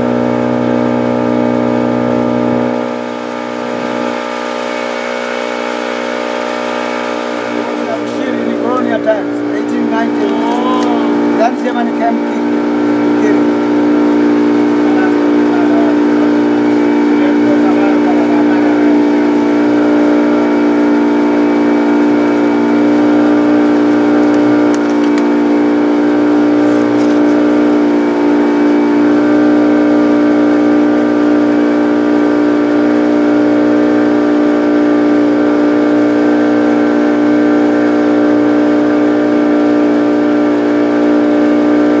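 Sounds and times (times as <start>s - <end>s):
boat engine drone: 0.0s - 42.0s.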